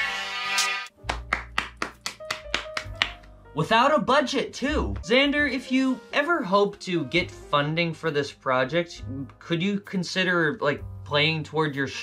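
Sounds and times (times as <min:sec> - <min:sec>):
person clapping hands: 0:00.9 - 0:03.4.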